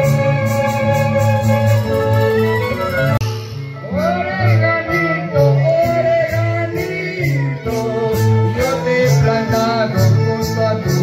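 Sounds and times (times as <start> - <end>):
string band music over loudspeakers: 0.0 - 11.0
person singing: 3.6 - 11.0.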